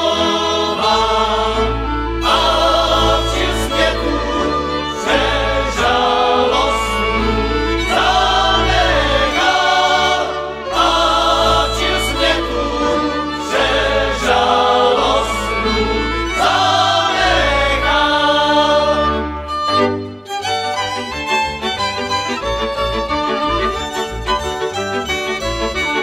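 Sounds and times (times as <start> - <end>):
men singing folk song: 0.0 - 19.2
double bass: 0.0 - 26.0
violins: 0.0 - 26.0.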